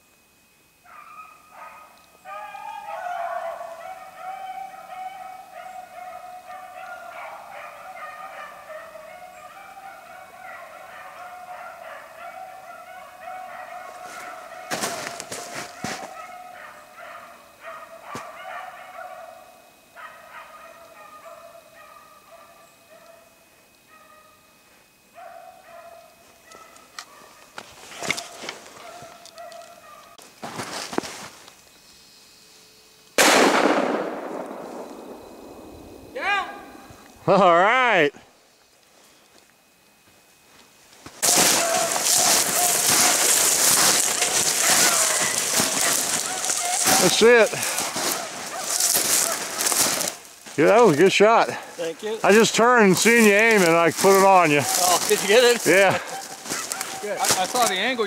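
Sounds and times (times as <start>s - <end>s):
hounds baying: 0.8s - 30.2s, 41.2s - 58.0s
sharp crack: 33.2s - 35.6s.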